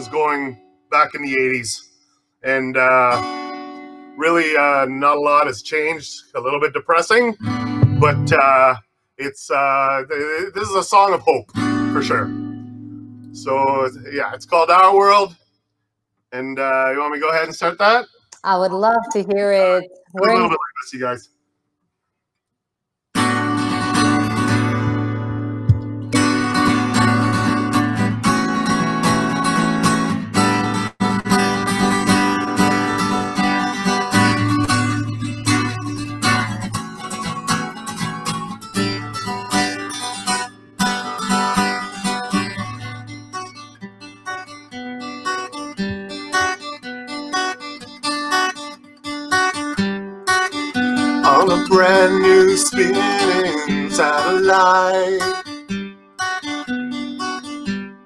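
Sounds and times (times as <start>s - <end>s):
acoustic guitar strumming: 2.7s - 5.5s, 7.4s - 8.7s, 10.2s - 15.3s, 19.0s - 20.7s, 23.2s - 58.0s.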